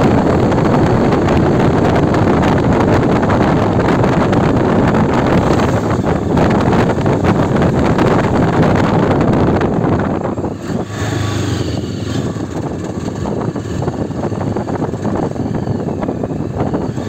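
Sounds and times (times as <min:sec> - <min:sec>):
motorcycle engine running: 0:00.0 - 0:17.0
wind rush over microphone: 0:00.0 - 0:17.0.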